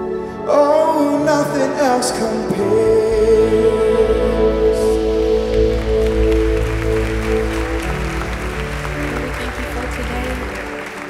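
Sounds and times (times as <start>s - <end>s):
sustained keyboard chords: 0.0s - 11.0s
congregation applause: 4.9s - 11.0s.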